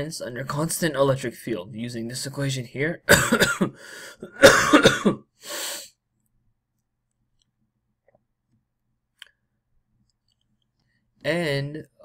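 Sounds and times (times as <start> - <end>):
man coughing: 3.1 - 5.3.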